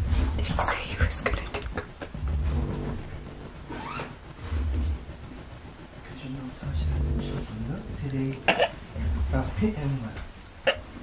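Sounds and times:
people whispering: 0:00.3 - 0:02.0.

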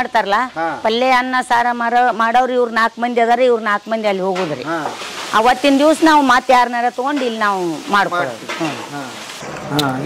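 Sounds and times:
faint hiss: 0:00.0 - 0:10.0
woman talking: 0:00.0 - 0:10.0.

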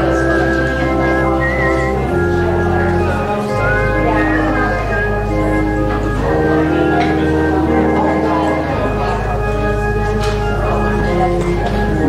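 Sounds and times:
high melody with vibrato: 0:00.0 - 0:12.0
organ chords: 0:00.0 - 0:12.0.

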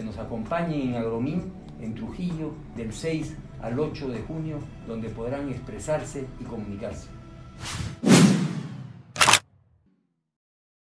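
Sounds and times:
sharp shutter-like burst: 0:09.2 - 0:09.4.

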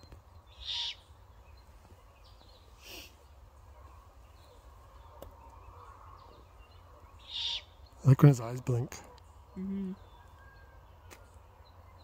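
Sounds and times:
young owl raspy screech: 0:00.6 - 0:01.0, 0:07.3 - 0:07.7.

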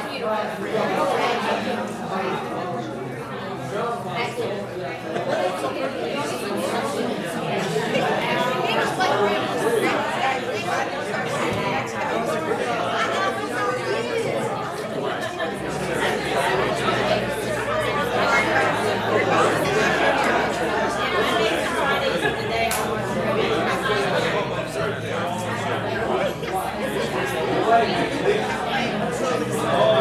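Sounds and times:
overlapping chatter of voices: 0:00.0 - 0:30.0.

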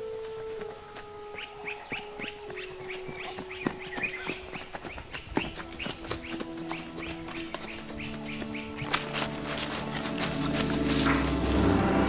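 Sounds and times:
long held notes: 0:00.0 - 0:04.6, 0:05.7 - 0:12.0
bird-like chirps: 0:00.0 - 0:10.1.

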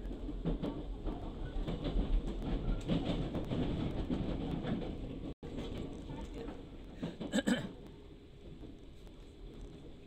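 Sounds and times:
train carriage rumble: 0:00.0 - 0:10.0
wheels clicking over rails: 0:00.1 - 0:07.8.

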